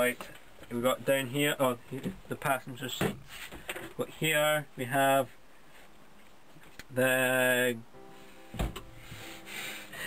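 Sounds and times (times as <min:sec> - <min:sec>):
faint steady background tones: 0:00.0 - 0:10.0
dull knock: 0:08.6 - 0:08.9.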